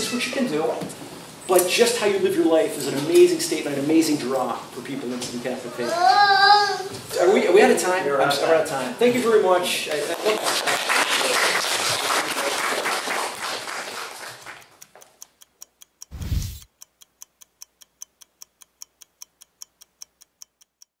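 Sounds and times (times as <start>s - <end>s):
people applauding: 9.9s - 14.8s
ticking clock sound effect: 14.9s - 21.0s.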